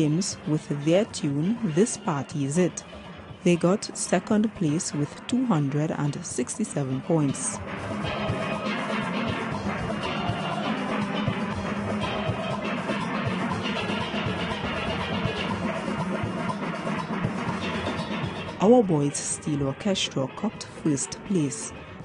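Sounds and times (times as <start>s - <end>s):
driving percussion rhythm: 0.0s - 21.8s.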